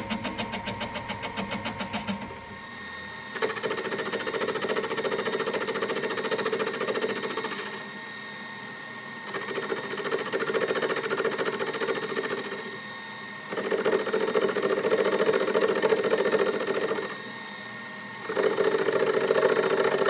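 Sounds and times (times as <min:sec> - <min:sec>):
lathe humming: 0:00.0 - 0:20.0
metal lathe cutting metal: 0:00.0 - 0:20.0.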